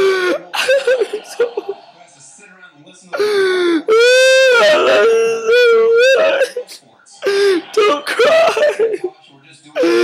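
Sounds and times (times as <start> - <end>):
young man mock crying: 7.7 - 8.9.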